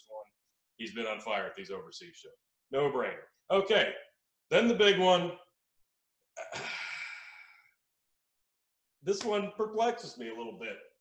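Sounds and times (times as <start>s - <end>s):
man sighing: 6.4s - 7.7s.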